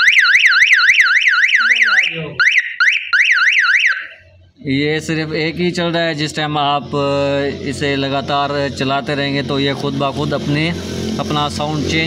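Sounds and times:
electronic siren warbling: 0.0s - 4.4s.

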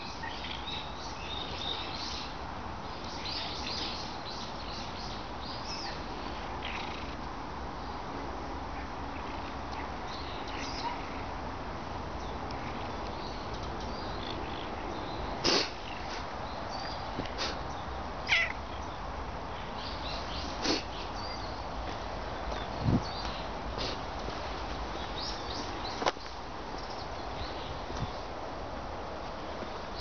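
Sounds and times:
steady outdoor noise: 0.0s - 30.0s
cat meowing: 18.3s - 18.6s.

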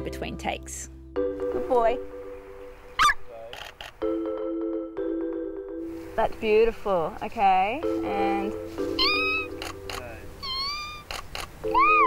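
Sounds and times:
music with mallet chords: 0.0s - 3.0s, 4.0s - 10.4s, 11.6s - 12.0s
squeaky honk rising in pitch: 3.0s - 3.2s, 8.9s - 9.6s, 10.4s - 12.0s
brief squeaks: 10.4s - 11.5s.

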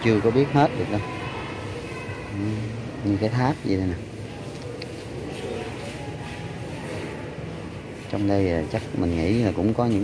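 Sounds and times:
crowded hall background noise: 0.0s - 10.0s.

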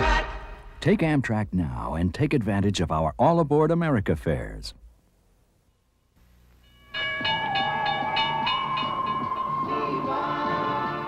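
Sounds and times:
train whistle chord: 7.2s - 11.0s.

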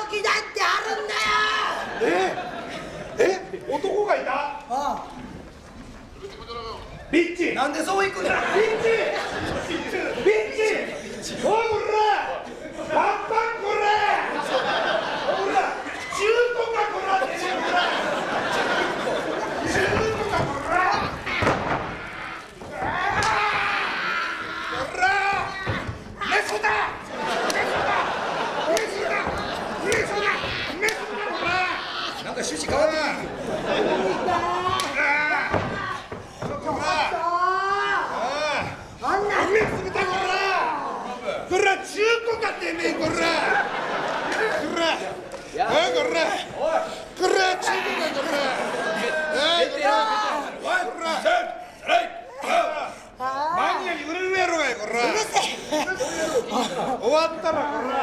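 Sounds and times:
low background noise: 0.0s - 58.0s
people talking and calling out: 0.0s - 58.0s.

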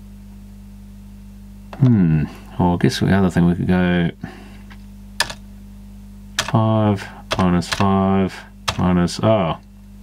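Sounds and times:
steady low hum: 0.0s - 10.0s
calculator key click: 6.4s - 6.6s, 7.3s - 7.9s, 8.7s - 8.9s.

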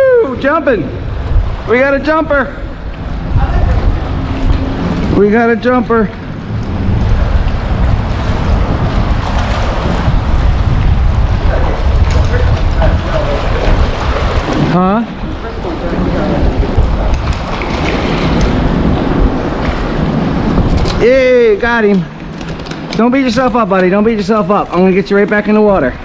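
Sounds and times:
wind buffeting microphone: 0.0s - 26.0s
waves washing against rocks: 1.0s - 26.0s.

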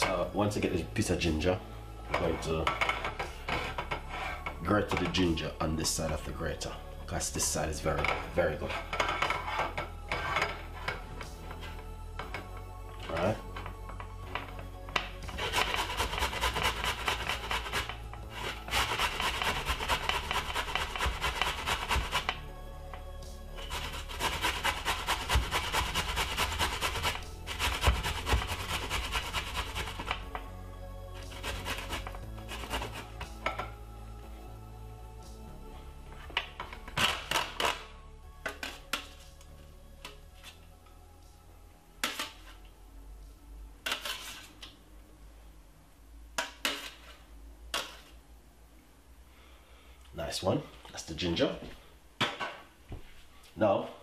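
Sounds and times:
ginger rasping on metal grater: 15.3s - 22.4s, 23.6s - 30.2s, 31.2s - 33.2s.

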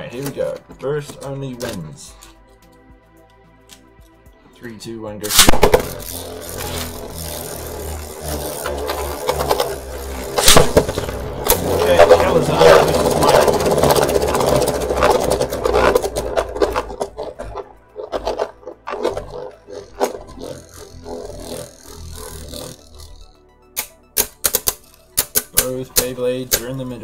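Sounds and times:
spinning tops whirring and scraping: 5.2s - 27.0s
spinning tops clacking together: 5.3s - 23.2s, 23.8s - 27.0s.

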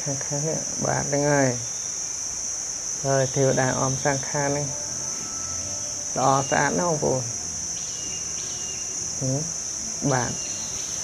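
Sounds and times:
insect chorus drone: 0.0s - 11.0s.

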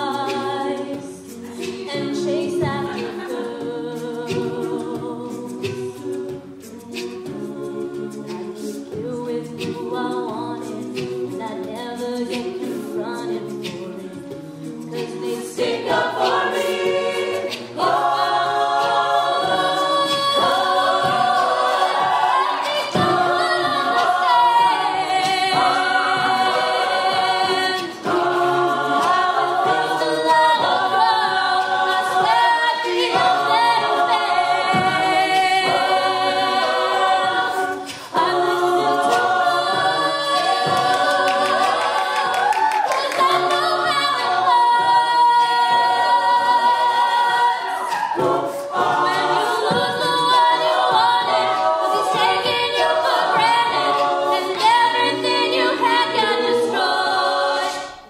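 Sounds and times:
vocal backing harmonies: 0.0s - 58.0s
woman singing lead: 6.8s - 58.0s.

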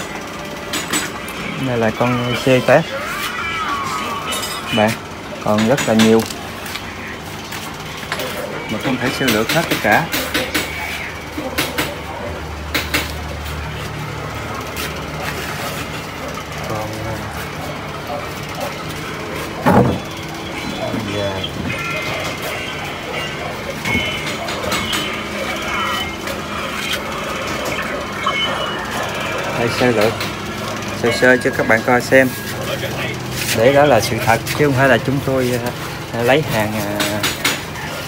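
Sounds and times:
indistinct voices: 0.0s - 38.0s.

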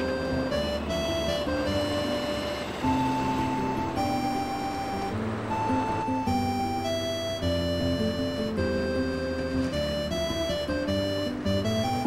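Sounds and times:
simple melody over bass line: 0.0s - 12.0s.

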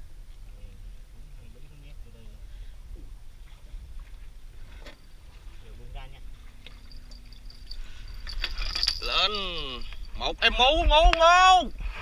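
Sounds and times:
metallic clinks and jangling: 6.6s - 10.3s.

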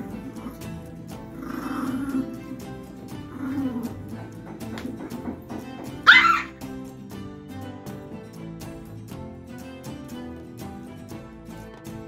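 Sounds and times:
background music: 0.0s - 12.0s
small dog yelp: 6.0s - 6.6s.

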